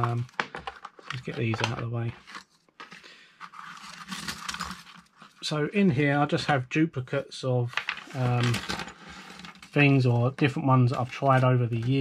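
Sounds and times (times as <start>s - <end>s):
lock picks rustling scrape: 2.2s - 5.4s, 7.8s - 9.8s.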